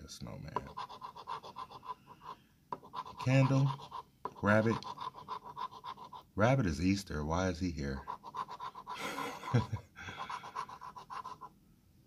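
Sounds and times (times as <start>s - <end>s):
coin scraping scratch card: 0.6s - 6.2s, 8.0s - 9.0s, 10.2s - 11.5s
breathy chuckle: 8.9s - 10.4s.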